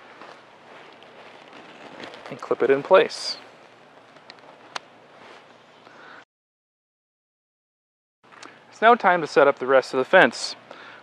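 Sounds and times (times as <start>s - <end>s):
faint outdoor hiss: 0.0s - 6.2s, 8.3s - 11.0s.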